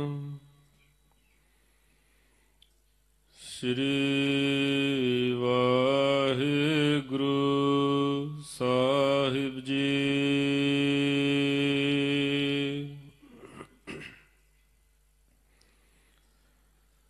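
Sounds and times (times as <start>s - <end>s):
man chanting held notes: 0.0s - 0.8s.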